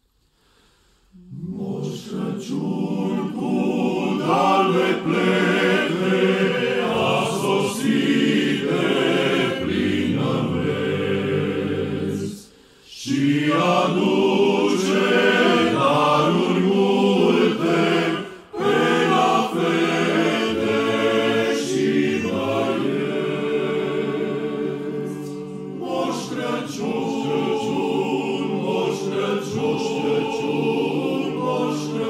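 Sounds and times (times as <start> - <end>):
men's choir singing a cappella: 1.2 - 32.0.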